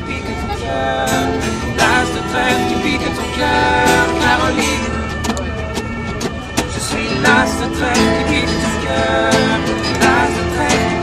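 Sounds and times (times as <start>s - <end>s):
acoustic guitars strumming chords: 0.0s - 11.0s.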